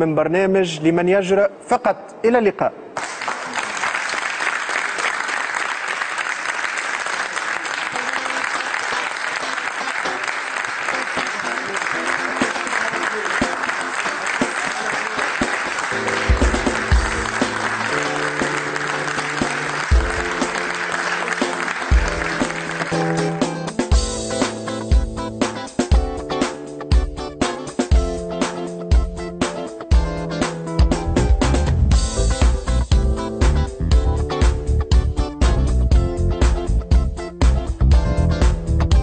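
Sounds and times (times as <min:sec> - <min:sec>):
audience applause: 0:03.0 - 0:23.9
theme tune with heavy bass beat: 0:13.4 - 0:39.0.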